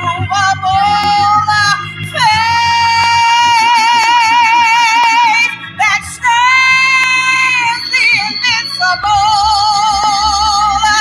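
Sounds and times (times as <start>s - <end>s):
person singing gospel: 0.0s - 11.0s.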